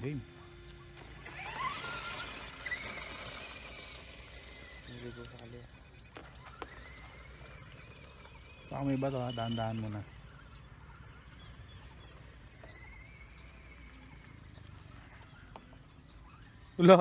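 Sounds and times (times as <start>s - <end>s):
rc truck motor whine: 0.0s - 17.0s.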